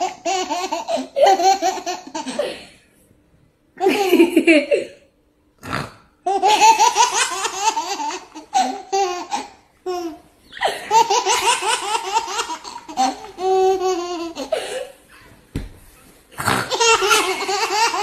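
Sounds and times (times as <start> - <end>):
baby laughing: 0.0 - 2.6, 6.3 - 15.3, 16.6 - 18.0
young boy laughing: 3.8 - 5.0.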